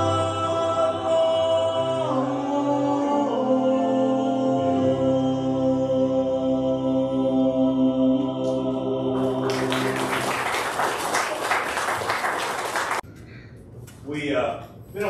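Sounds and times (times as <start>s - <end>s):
congregation applauding: 9.2s - 13.0s.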